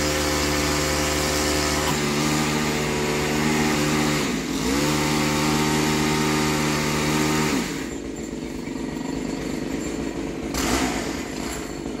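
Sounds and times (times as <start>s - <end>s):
pole saw engine running: 0.0s - 12.0s.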